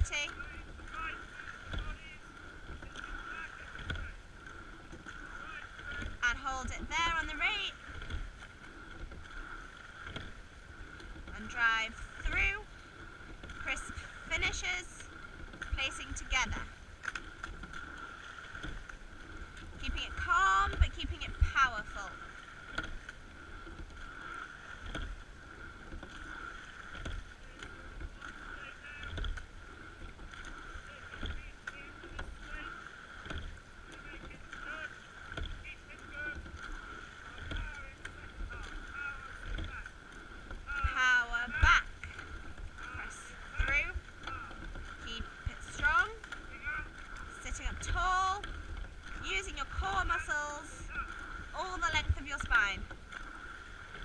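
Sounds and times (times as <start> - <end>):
oars knocking: 0.0 - 54.0
water: 0.0 - 54.0.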